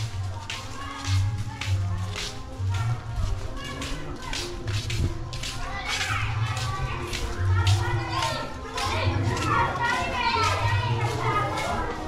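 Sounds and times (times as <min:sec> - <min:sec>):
children shouting and chattering: 0:00.0 - 0:12.0.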